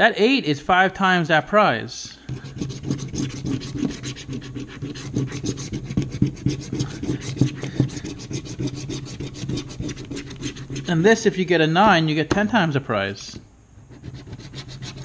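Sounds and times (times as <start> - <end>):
scratching lottery ticket coating: 2.3 - 11.4, 14.0 - 15.0.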